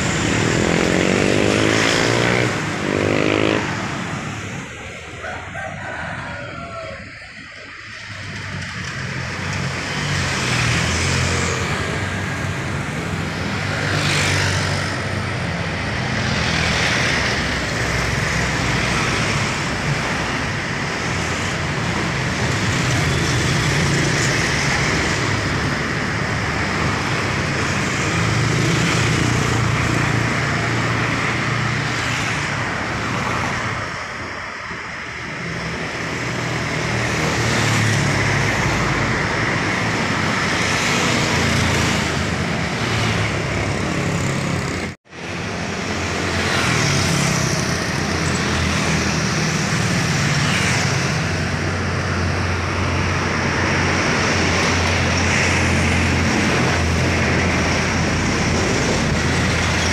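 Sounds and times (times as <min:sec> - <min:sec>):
motorcycles and cars passing: 0:00.0 - 0:59.9.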